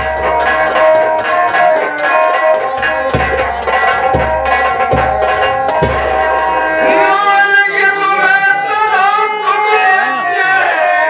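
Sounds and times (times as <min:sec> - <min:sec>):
drum stroke: 0:00.0 - 0:06.5
harmonium notes: 0:00.0 - 0:11.0
man singing: 0:06.8 - 0:11.0.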